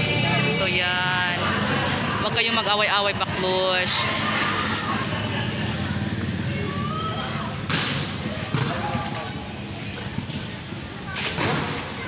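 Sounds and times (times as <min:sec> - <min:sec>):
murmur of voices: 0:00.0 - 0:12.0
volleyball being struck: 0:07.7 - 0:08.9.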